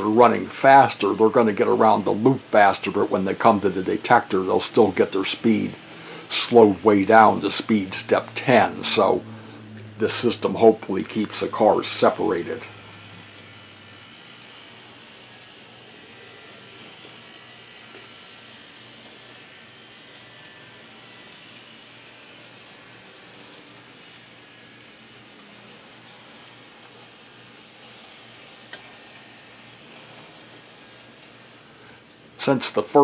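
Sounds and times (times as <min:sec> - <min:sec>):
model streetcars whirring on track: 0:00.0 - 0:31.7.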